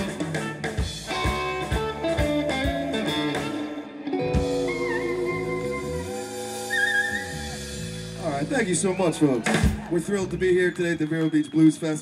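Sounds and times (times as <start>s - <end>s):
electric guitars sustaining notes: 0.0s - 9.2s
saxophone sustaining notes: 4.1s - 8.9s.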